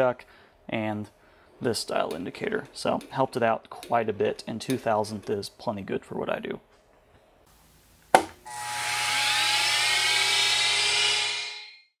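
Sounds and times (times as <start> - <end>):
electric motor whine: 8.4 - 11.6.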